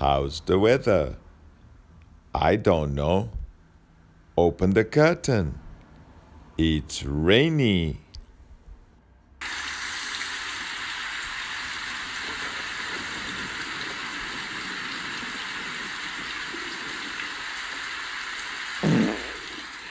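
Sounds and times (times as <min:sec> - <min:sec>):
steady rain: 0:09.4 - 0:19.9.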